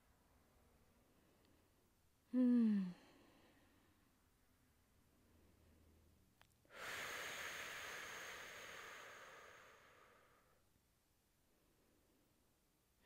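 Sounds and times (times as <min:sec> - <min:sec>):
person breathing out: 0:06.7 - 0:10.6.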